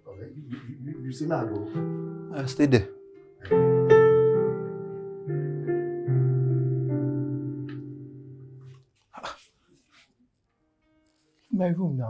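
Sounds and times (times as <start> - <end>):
soft piano music: 0.0 - 8.9, 10.6 - 12.0.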